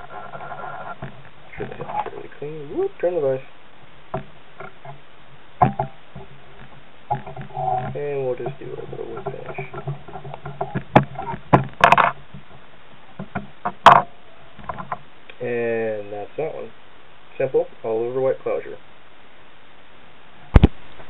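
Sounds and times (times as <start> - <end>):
low muttered speech: 1.5 - 3.5, 7.5 - 9.8.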